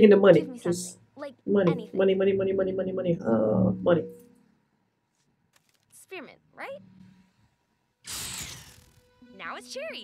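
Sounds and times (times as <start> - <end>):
electricity buzz crackling hiss: 8.0 - 9.2.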